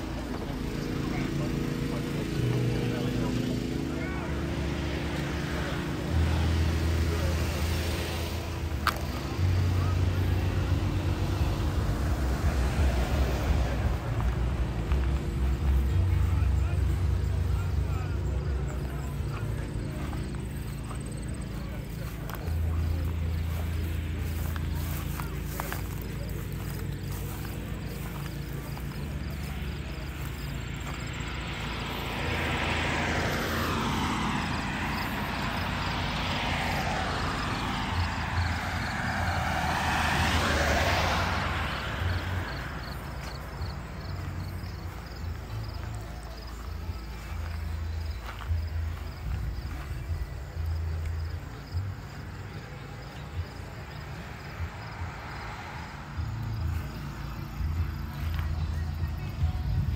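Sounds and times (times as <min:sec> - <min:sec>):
indistinct chatter of people: 0:00.0 - 0:59.9
vehicle engine running: 0:00.0 - 0:59.9.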